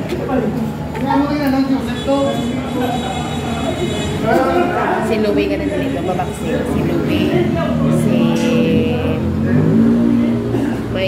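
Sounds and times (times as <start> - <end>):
motor vehicle engine hum: 0.0 - 11.0
people talking: 0.0 - 11.0.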